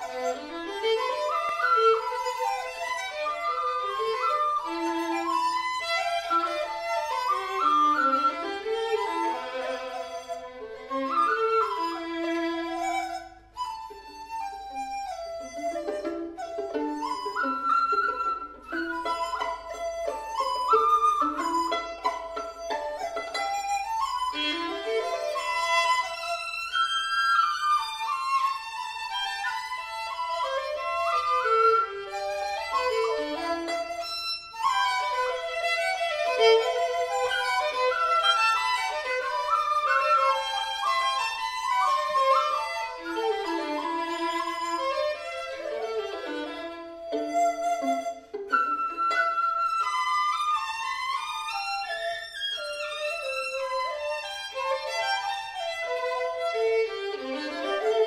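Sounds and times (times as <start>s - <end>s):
bamboo flute: 0.0s - 58.0s
violin: 0.0s - 58.0s.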